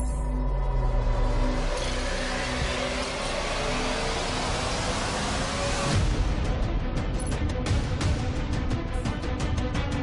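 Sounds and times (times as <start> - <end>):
low bass drone: 0.0 - 9.4.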